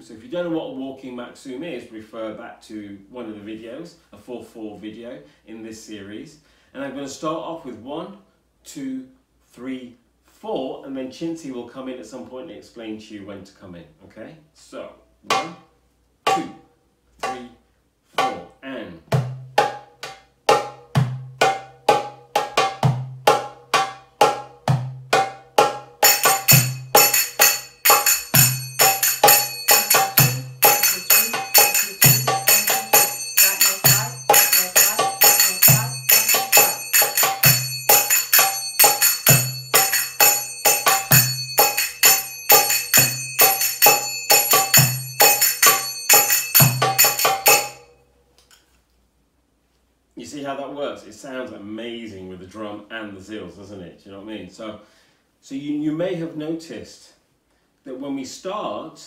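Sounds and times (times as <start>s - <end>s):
goblet drum rhythm: 15.2s - 15.7s, 16.3s - 17.6s, 18.2s - 47.9s
finger cymbals ringing: 26.0s - 47.9s.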